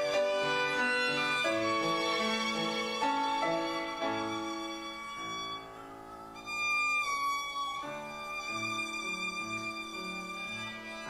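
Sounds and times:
instrumental church music: 0:00.0 - 0:11.0.

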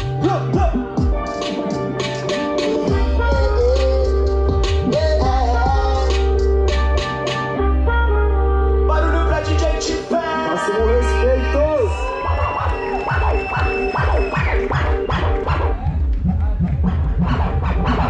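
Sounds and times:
dj beat through a pa: 0:00.0 - 0:07.6, 0:12.1 - 0:18.0
turntable scratching: 0:12.5 - 0:18.0.

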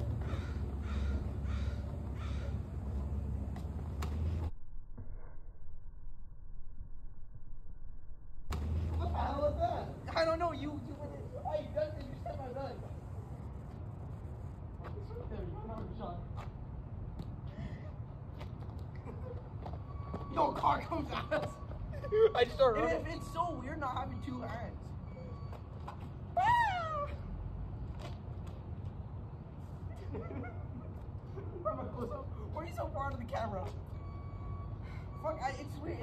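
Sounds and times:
low hum: 0:00.0 - 0:11.8.

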